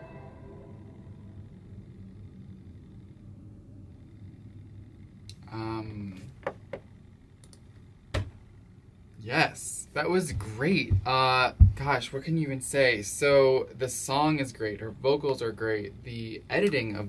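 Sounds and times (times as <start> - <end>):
sharp clicks: 7.4 - 8.3.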